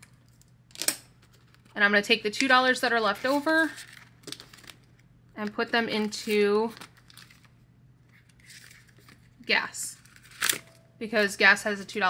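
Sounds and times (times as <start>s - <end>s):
paper and plastic rustling: 2.4s - 5.0s, 5.8s - 11.3s.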